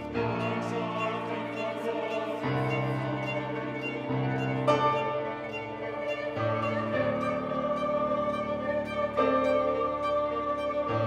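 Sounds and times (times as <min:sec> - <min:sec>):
mixed choir singing: 0:00.0 - 0:11.0
violin accompaniment: 0:00.0 - 0:11.0.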